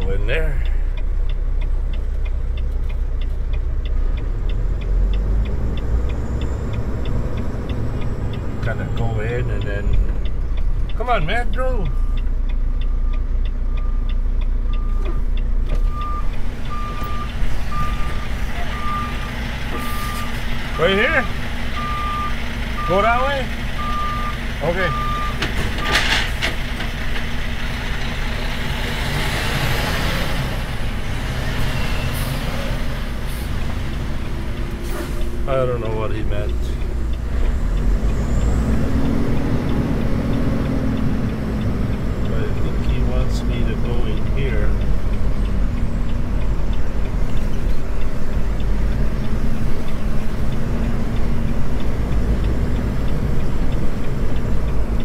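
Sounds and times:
diesel engine running: 0.0 - 55.0
truck reverse alarm beeping: 9.8 - 26.4.

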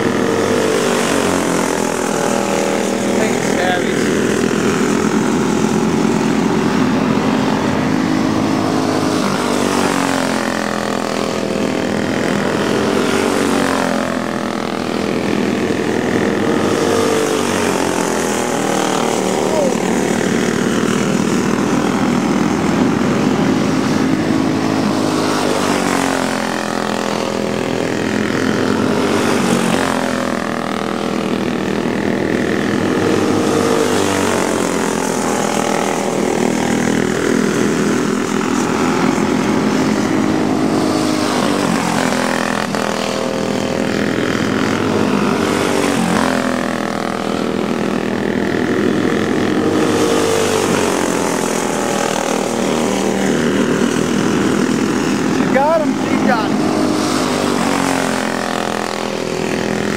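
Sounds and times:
go-kart engines racing: 0.0 - 59.9.

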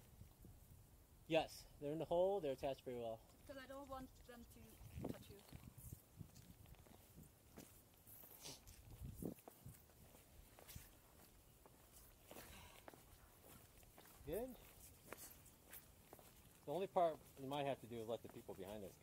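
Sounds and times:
footsteps on stone: 3.4 - 19.0.

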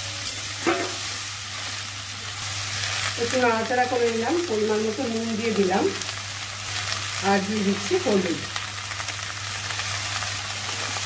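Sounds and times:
vegetables sizzling in oil: 0.0 - 11.0.

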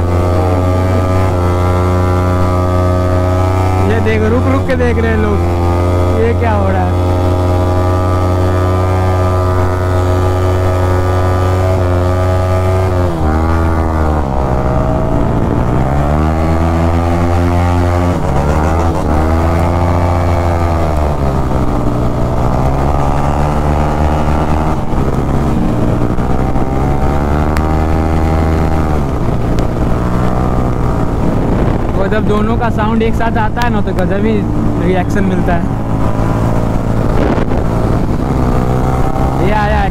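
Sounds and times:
motorcycle engine at road speed: 0.0 - 39.9.

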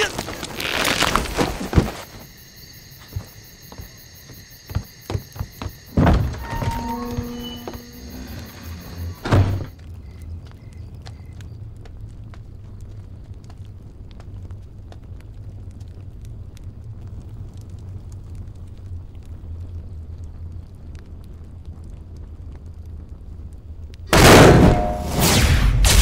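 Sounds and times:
magic burst boom: 24.1 - 26.0.

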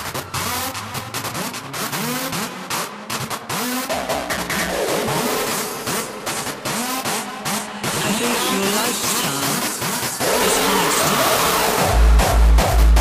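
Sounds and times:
hardstyle electronic music: 0.0 - 13.0
sampled car engine revving: 0.0 - 13.0.

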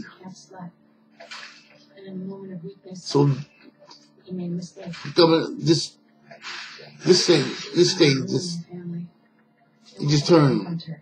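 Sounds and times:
man murmuring: 7.0 - 8.6.

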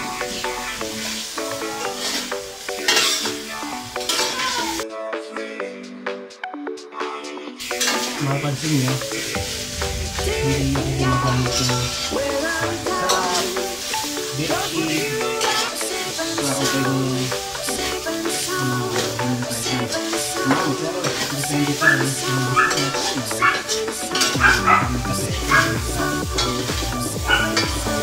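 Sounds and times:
meat and beans sizzling in a wok: 0.0 - 4.8, 9.0 - 10.5, 11.1 - 24.5, 25.8 - 28.0
background music with melody: 0.0 - 28.0
spatula scraping a wok: 1.9 - 3.4, 15.3 - 15.8.

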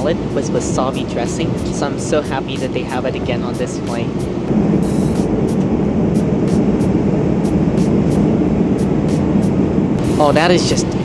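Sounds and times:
airplane cabin rumble in flight: 0.0 - 11.0.

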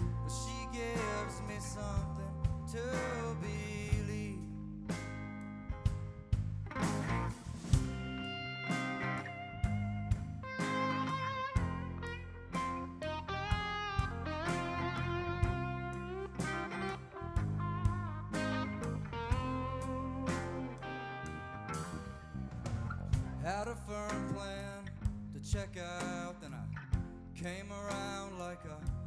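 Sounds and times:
steady drum beat: 0.0 - 21.0, 21.7 - 24.5, 25.1 - 26.2
electric lead guitar bending notes: 0.0 - 25.3
acoustic guitar: 0.0 - 29.0
bass guitar: 0.0 - 29.0.

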